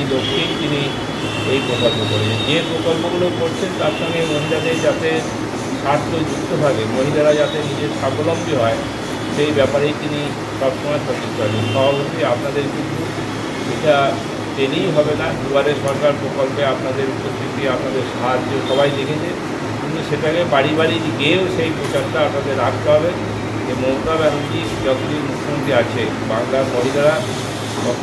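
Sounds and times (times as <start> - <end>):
high-pitched whine: 0.0 - 28.0
man speaking: 0.0 - 28.0.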